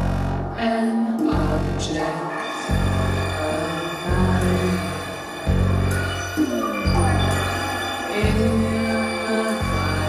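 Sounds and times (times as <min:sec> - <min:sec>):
deep synthesizer bass notes: 0:00.0 - 0:10.0
held high synth tones: 0:01.2 - 0:10.0.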